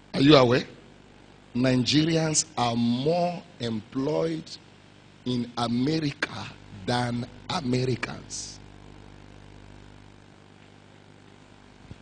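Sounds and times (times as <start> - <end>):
faint low hum with hiss: 0.0 - 12.0.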